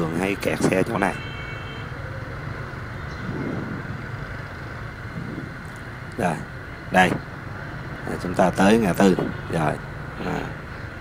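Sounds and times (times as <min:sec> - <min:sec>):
dense traffic rumble: 0:00.0 - 0:11.0.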